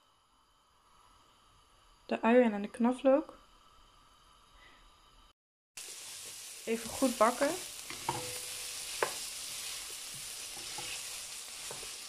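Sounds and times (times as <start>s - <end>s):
faint background hum: 0.0s - 5.3s.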